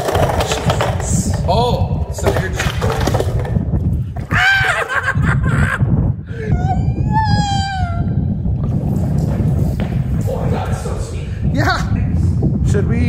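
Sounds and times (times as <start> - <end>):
steady low rumble: 0.0 - 13.0
high wail: 4.3 - 5.3, 6.4 - 8.3.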